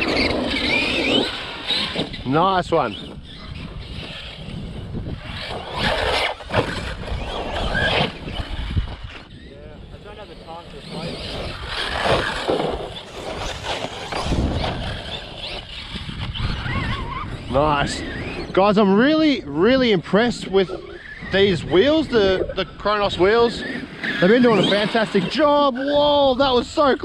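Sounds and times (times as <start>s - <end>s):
rc car motor whining: 0.0s - 27.0s
tyres on dirt and grass: 0.0s - 27.0s.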